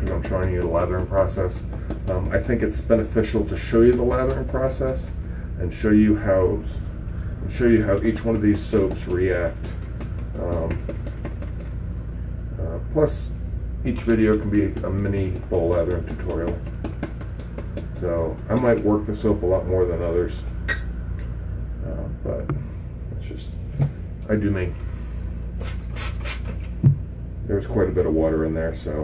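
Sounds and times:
man speaking: 10.4 - 10.8, 18.0 - 20.5.

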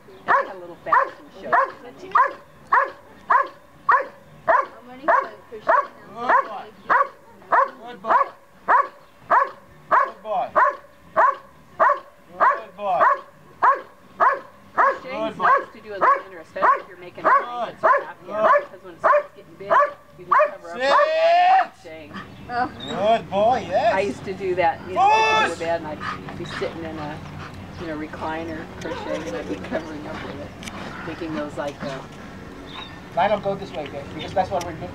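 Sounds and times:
dog barking: 0.3 - 21.1.

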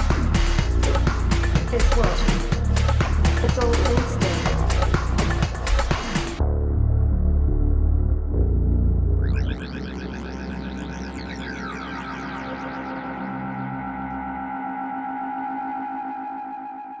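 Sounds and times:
heavy electronic bass: 0.0 - 14.5
synthesizer chord with delay sweeps: 0.0 - 17.0.

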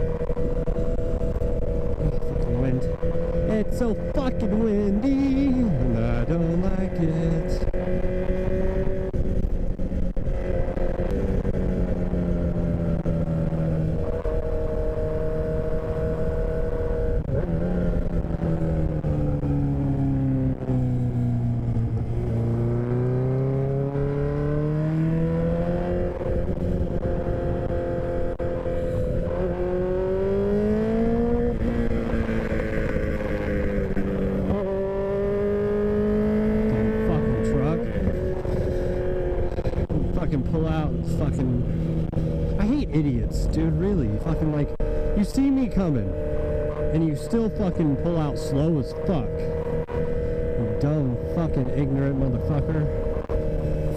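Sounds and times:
motorcycle engine running: 0.0 - 53.9.

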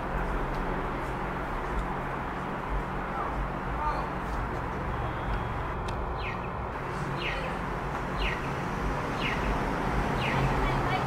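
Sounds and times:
distant traffic rumble: 0.0 - 11.0
small bird chirping: 8.2 - 8.5, 9.2 - 9.6.

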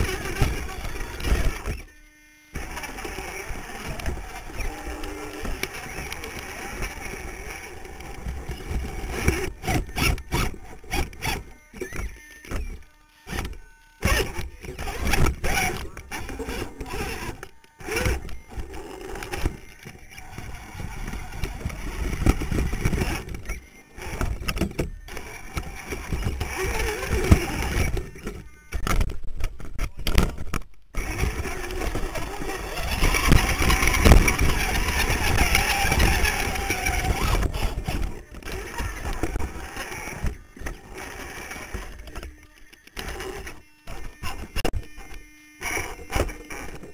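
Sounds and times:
electric motors whining: 0.0 - 46.9
chassis and tyres scraping rock: 31.0 - 42.3.

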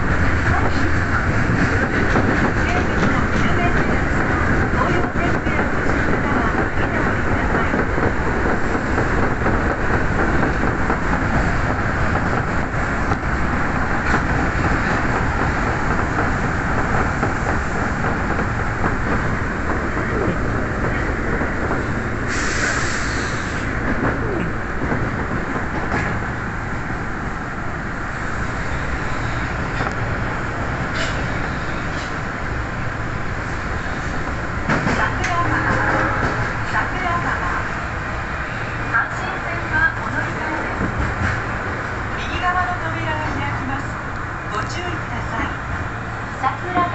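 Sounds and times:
train wheels rumbling on rails: 0.0 - 46.9.

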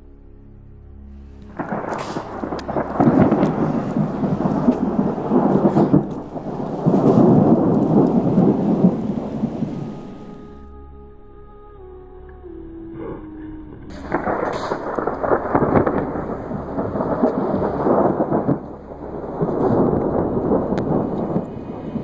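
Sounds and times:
thunder rumbling and cracking: 1.4 - 10.6, 13.9 - 22.0.

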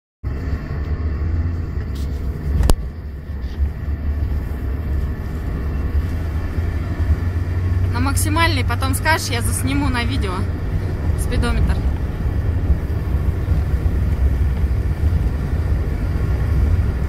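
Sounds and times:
car driving low rumble: 0.2 - 17.0.

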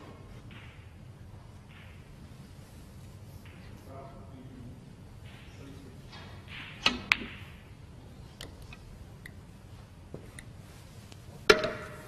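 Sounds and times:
snooker balls clicking: 0.0 - 3.8, 6.1 - 7.7, 10.1 - 12.0.

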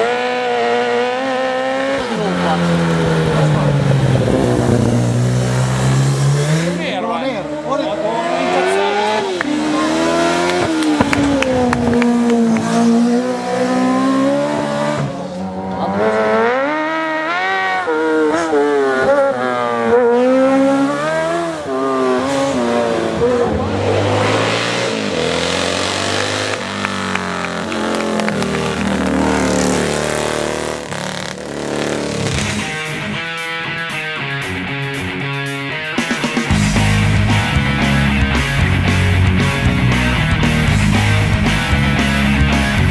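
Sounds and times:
racing engines revving: 0.0 - 42.9.

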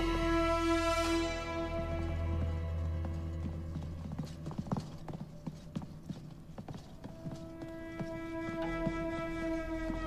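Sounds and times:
footsteps on wooden floor: 2.3 - 5.2.

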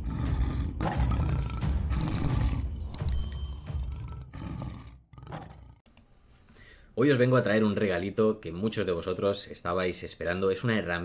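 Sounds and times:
lion roaring: 0.0 - 3.1, 3.8 - 5.8
high sparkling chime: 3.1 - 3.9.

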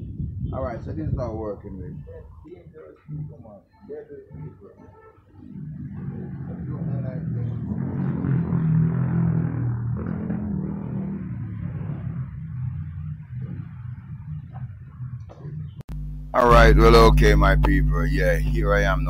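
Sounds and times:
low engine-like hum: 5.6 - 19.0.

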